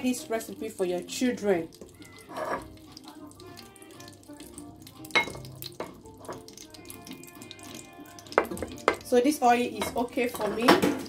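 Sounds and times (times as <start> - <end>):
faint background music: 0.0 - 11.0
oil frying hiss: 0.0 - 11.0
wooden spoon knocking pot: 8.3 - 9.1.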